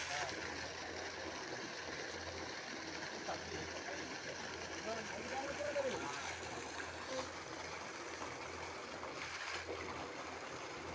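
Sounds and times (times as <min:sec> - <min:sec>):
water jet splashing into well: 0:00.0 - 0:10.9.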